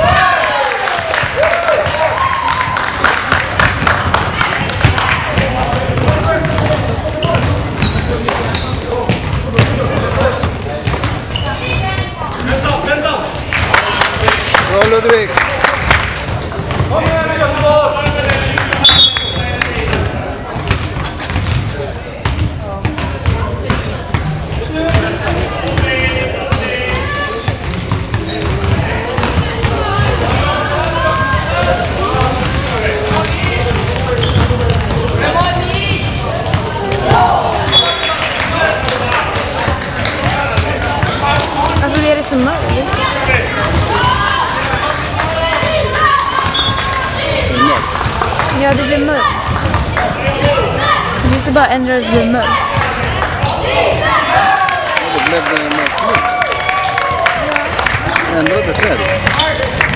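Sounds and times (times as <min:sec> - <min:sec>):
voices calling across hall: 0:00.0 - 0:59.9
basketball bouncing on floor: 0:04.6 - 0:11.2, 0:16.3 - 0:37.8, 0:39.6 - 0:46.8, 0:47.6 - 0:51.5.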